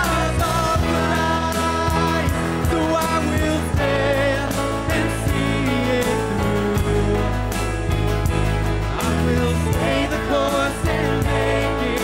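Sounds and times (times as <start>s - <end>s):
worship band playing: 0.0s - 12.0s.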